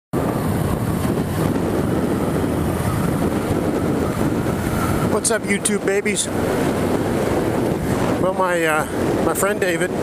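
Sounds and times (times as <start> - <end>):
motorcycle road noise: 0.1 - 10.0
wind rushing over microphone: 0.1 - 10.0
motorcycle engine: 0.2 - 9.2.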